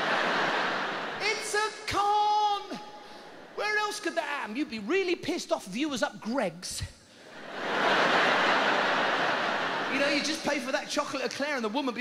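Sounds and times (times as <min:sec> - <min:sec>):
audience laughing: 0:00.0 - 0:01.6, 0:07.3 - 0:11.0.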